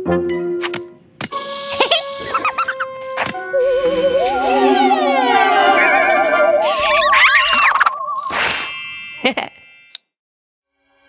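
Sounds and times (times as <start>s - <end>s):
wavering spooky tone: 3.4s - 9.7s
bright ding: 9.9s - 10.2s.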